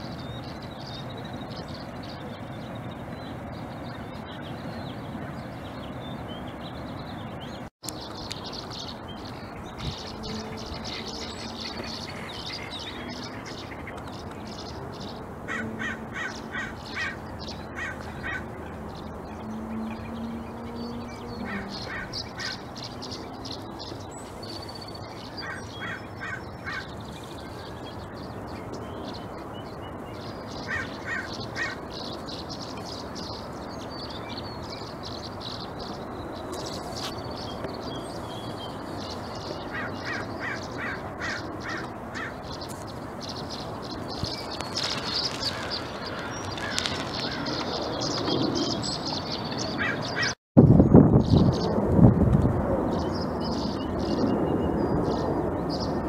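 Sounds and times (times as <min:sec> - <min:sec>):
birds harsh calls: 0:00.0 - 0:50.4.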